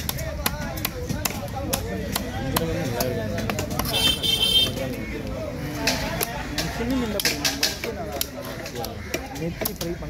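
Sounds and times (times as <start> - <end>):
cleaver chopping on wooden block: 0.0 - 4.8
murmur of voices: 0.0 - 10.0.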